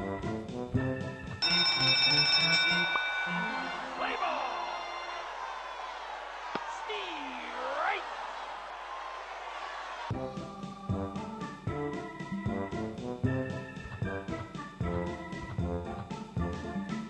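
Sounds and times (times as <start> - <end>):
ringing bell-like chimes: 1.4 - 5.1
crowd-like backdrop: 1.5 - 10.8.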